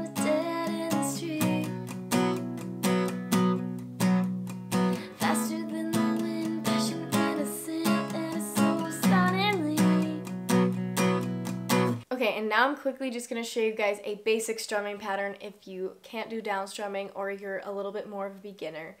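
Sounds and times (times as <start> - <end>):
woman singing: 0.0 - 1.9, 5.0 - 10.3
acoustic guitar strumming: 0.0 - 12.0.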